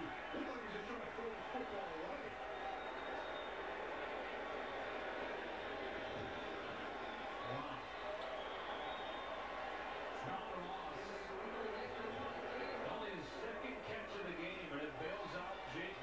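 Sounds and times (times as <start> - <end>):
stadium crowd noise: 0.0 - 16.0.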